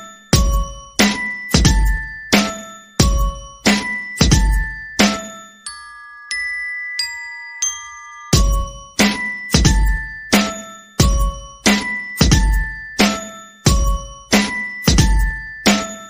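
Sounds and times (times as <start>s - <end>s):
bell-like chime tones: 0.0s - 16.0s
deep regular beat: 0.4s - 4.6s, 8.4s - 10.0s, 11.0s - 12.6s, 13.7s - 15.8s.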